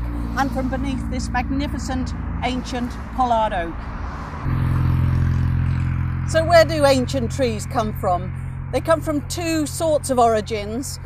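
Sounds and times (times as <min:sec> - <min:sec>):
road traffic engine rumble: 0:00.0 - 0:11.0.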